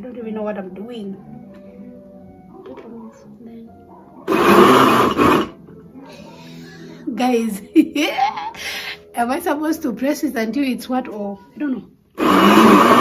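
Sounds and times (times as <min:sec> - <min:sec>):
blender motor whirring: 0:04.3 - 0:05.6, 0:12.2 - 0:13.0.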